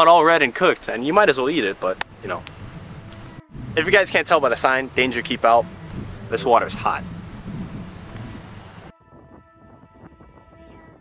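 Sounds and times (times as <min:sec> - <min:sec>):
wind rushing on microphone: 0:01.0 - 0:11.0.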